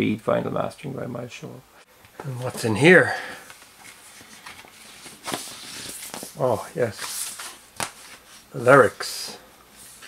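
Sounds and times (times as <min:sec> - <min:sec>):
paper rustling and sliding: 0:03.5 - 0:10.0
paper scrape: 0:03.9 - 0:06.3.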